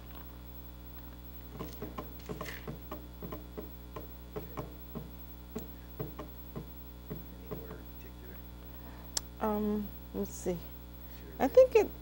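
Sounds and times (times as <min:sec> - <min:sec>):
steady electrical hum: 0:00.0 - 0:12.0
keyboard keys tapping: 0:01.6 - 0:07.8.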